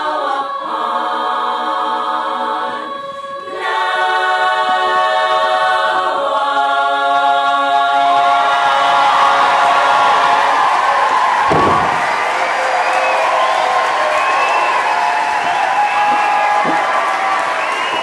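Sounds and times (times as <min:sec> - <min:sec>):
a cappella chorus chord: 0:00.0 - 0:11.5
audience applause and cheering: 0:08.4 - 0:18.0.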